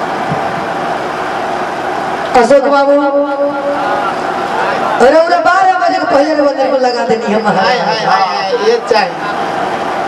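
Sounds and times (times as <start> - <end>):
noisy hubbub: 0.0 - 10.0.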